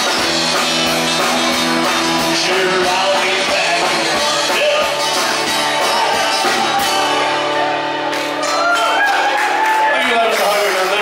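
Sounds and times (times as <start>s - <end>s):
drum kit beat: 0.0s - 9.7s
acoustic guitar: 0.0s - 11.0s.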